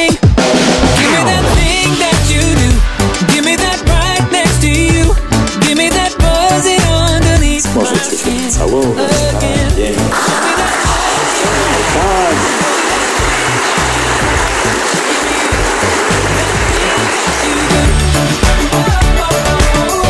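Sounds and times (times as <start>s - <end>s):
people applauding: 9.2s - 20.0s.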